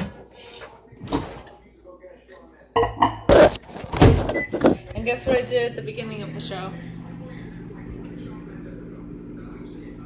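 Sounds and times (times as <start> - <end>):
low steady hum: 4.3 - 10.0.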